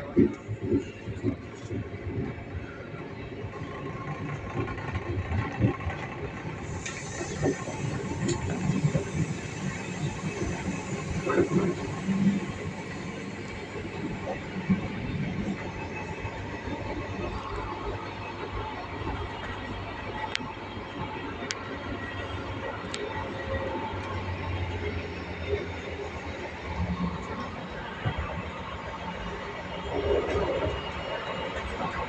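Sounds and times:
train wheels rumbling on track: 0.0 - 32.0.

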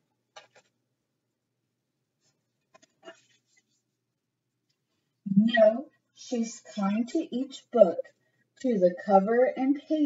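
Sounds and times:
paper page turning: 2.2 - 3.8.

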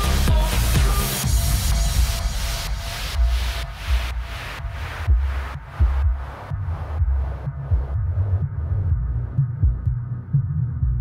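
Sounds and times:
house music: 0.0 - 11.0
thumping kick drum and bassline: 0.0 - 11.0.

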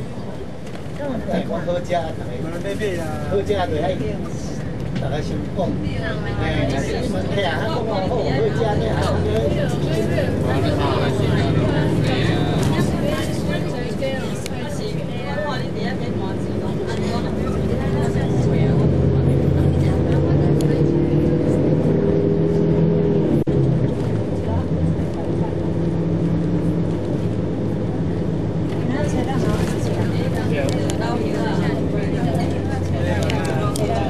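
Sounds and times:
bus engine and road drone: 0.0 - 34.0
passengers' voices: 0.0 - 34.0.

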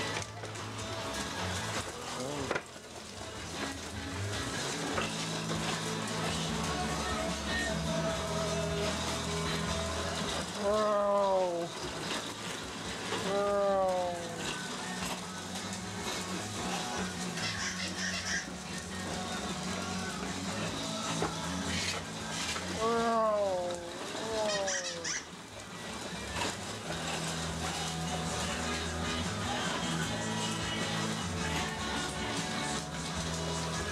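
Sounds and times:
music: 0.0 - 33.9.

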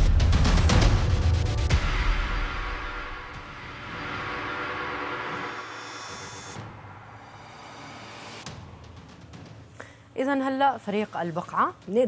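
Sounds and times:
loud musical hit: 0.0 - 9.7
whoosh with sustained tones: 2.0 - 8.9.

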